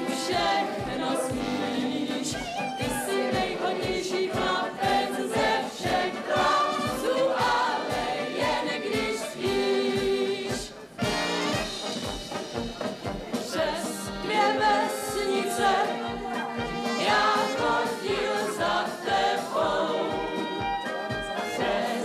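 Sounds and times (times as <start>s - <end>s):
brass band playing: 0.0s - 10.0s, 10.6s - 22.0s
group of voices singing: 0.0s - 12.0s, 13.2s - 22.0s.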